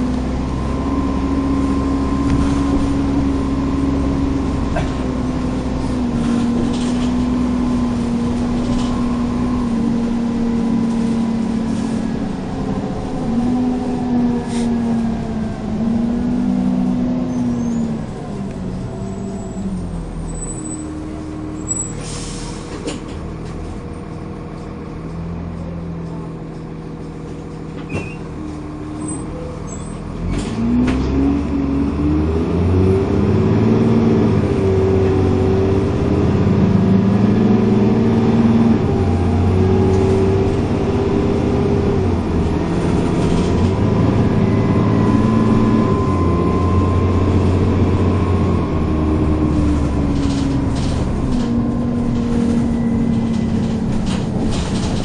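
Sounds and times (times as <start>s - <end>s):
bus diesel engine: 0.0s - 55.0s.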